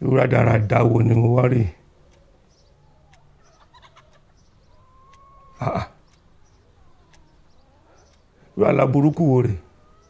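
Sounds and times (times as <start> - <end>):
faint distant bird calls: 0.0 - 10.0
small clicks: 2.0 - 8.4.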